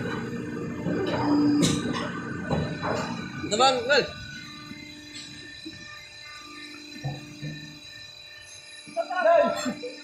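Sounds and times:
machine humming: 0.0 - 10.0.

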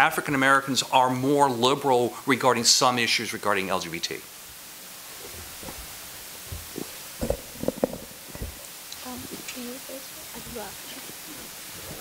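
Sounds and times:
microphone handling bumps: 5.2 - 9.4.

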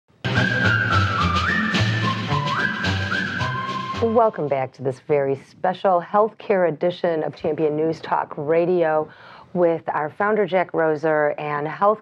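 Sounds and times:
whistle-like melody over beat: 0.2 - 4.3.

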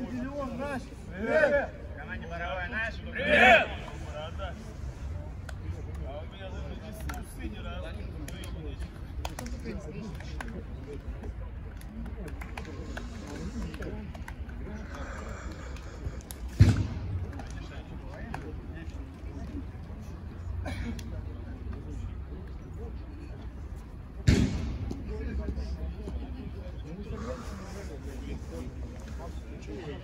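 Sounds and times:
sharp loud thump: 16.5 - 17.2, 24.2 - 25.0
men chattering: 25.1 - 30.0.

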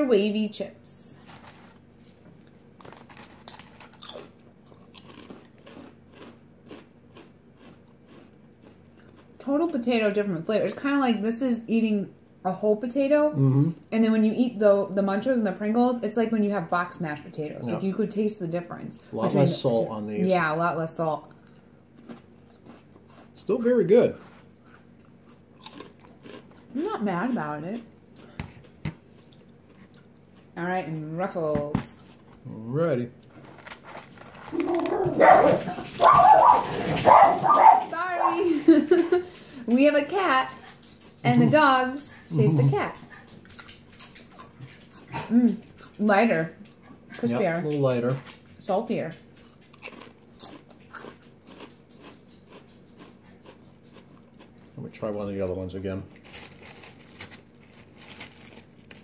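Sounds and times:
potato chips crunching: 2.8 - 9.4, 22.0 - 27.1, 49.4 - 55.5, 56.1 - 59.0.

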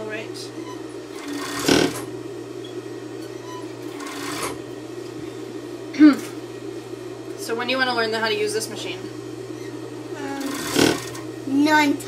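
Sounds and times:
overlock machine humming: 0.0 - 12.0.

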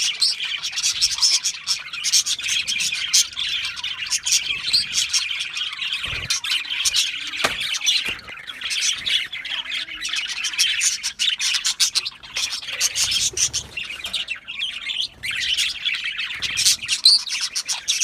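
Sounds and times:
budgerigars chattering: 0.0 - 18.0.

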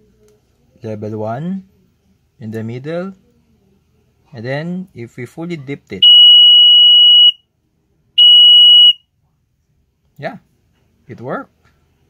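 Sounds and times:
piezo buzzer beeps: 6.0 - 7.4, 8.2 - 9.0.

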